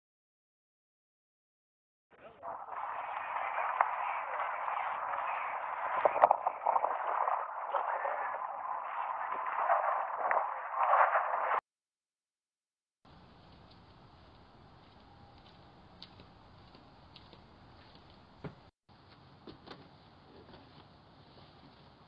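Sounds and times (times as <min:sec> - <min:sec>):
fire crackling and rushing: 0:02.4 - 0:11.6.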